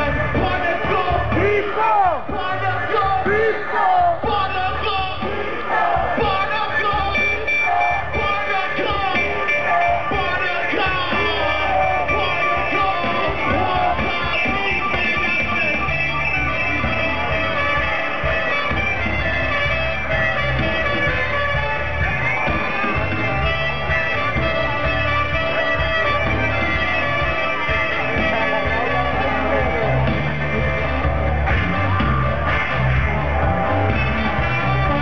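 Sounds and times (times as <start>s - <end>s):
heavy bass line: 0.0s - 35.0s
live band playing loud music: 0.0s - 35.0s.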